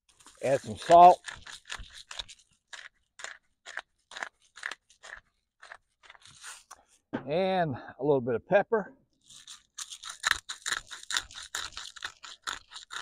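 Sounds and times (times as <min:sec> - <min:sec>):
salt grinder grinding: 0:00.1 - 0:06.8, 0:09.2 - 0:13.0.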